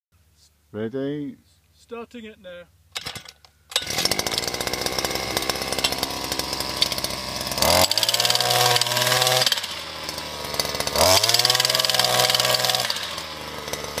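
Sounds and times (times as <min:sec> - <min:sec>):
petrol jack hammer running: 0:03.0 - 0:14.0.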